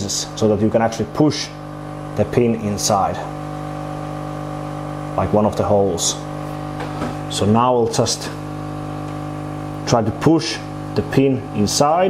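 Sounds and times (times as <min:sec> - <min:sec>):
hot-air gun blower hum: 0:00.0 - 0:12.0.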